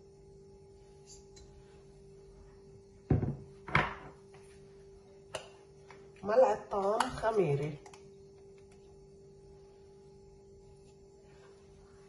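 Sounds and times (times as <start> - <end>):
faint hum: 0.0 - 12.0.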